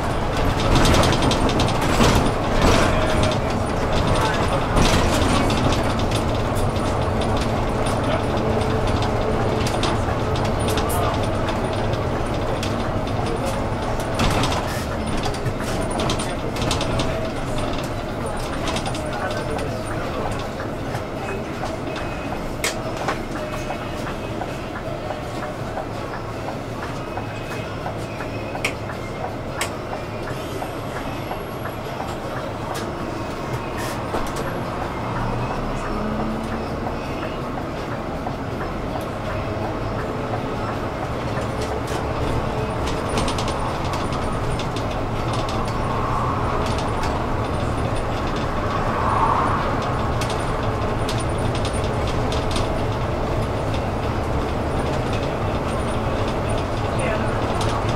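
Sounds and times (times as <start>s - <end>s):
bus engine and road rumble: 0.0s - 57.9s.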